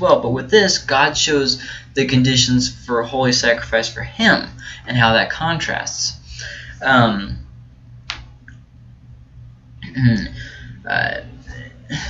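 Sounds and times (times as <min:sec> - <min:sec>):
sharp click: 0:08.0 - 0:08.6
man clearing throat grunts: 0:09.8 - 0:10.4.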